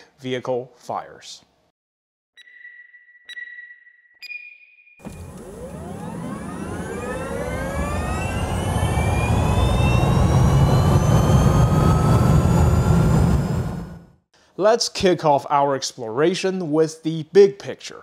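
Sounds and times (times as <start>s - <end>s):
countdown beeps: 2.4s - 5.0s
vehicle whine rising in pitch: 5.0s - 14.2s
deep rumble: 5.8s - 14.1s.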